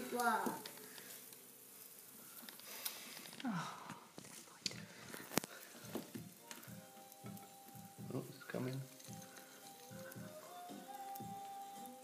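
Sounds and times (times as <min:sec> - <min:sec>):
faint fizzing hiss: 0:00.0 - 0:12.0.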